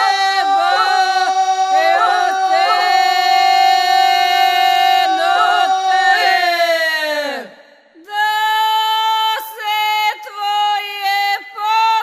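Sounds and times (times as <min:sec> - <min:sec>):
group singing one long note: 0:00.0 - 0:07.8.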